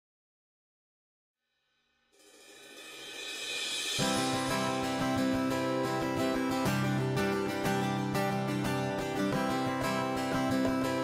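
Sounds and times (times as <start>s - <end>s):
cymbal wash: 2.2s - 6.5s
background music: 2.9s - 11.0s.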